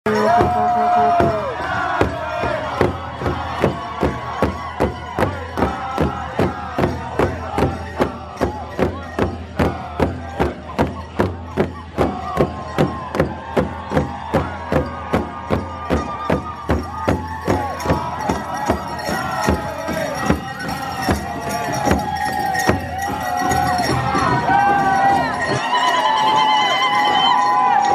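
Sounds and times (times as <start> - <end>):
crowd noise: 0.1 - 27.9
drum beating: 0.1 - 27.9
voices singing: 0.1 - 27.9.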